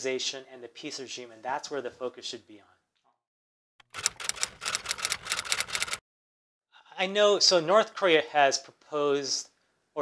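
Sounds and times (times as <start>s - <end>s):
typewriter keystroke clicks: 3.8s - 6.0s.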